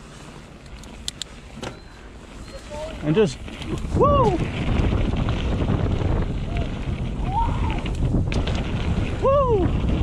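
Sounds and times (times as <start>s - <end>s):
bike tyres rumbling on dirt: 0.0s - 10.0s
wind buffeting microphone: 2.4s - 10.0s
person shouting woo: 4.0s - 4.4s, 7.2s - 7.8s, 9.2s - 9.7s.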